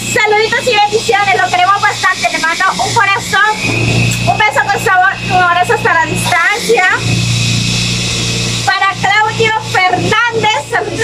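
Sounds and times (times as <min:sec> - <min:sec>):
woman speaking: 0:00.0 - 0:03.6, 0:04.2 - 0:07.1, 0:08.7 - 0:11.0.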